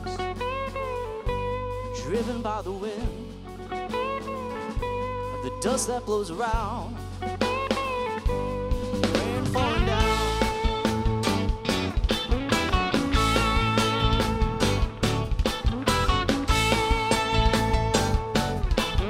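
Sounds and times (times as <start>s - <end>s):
bass guitar: 0.0s - 19.0s
drum kit beat: 0.0s - 19.0s
electric guitar lead lines: 0.0s - 19.0s.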